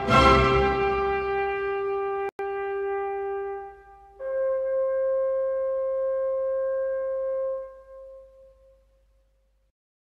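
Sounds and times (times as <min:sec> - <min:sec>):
wind instrument holding long note: 0:00.0 - 0:08.8.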